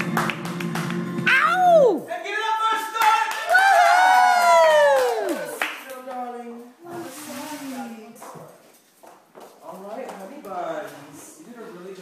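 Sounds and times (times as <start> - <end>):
audience clapping: 0.0 - 2.0, 2.6 - 6.2.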